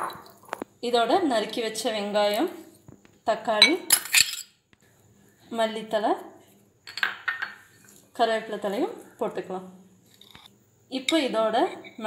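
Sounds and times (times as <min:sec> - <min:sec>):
spoon and bowl clinking on plate: 0:06.9 - 0:07.6.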